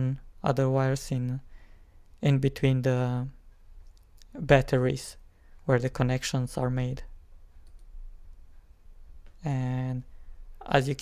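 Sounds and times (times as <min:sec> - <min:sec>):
steady low hum: 0:00.0 - 0:11.0
faint clicks: 0:07.5 - 0:09.4.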